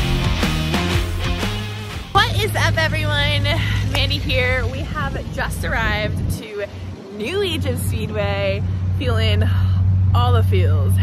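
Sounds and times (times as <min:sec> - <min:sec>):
woman talking: 0:02.2 - 0:11.0.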